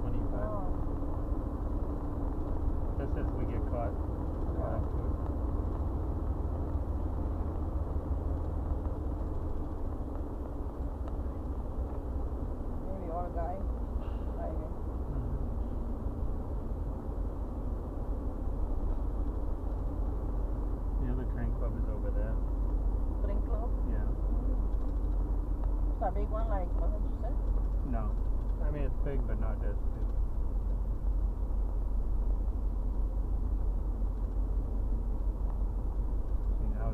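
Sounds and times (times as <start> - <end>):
car cabin road and engine noise: 0.0 - 36.9.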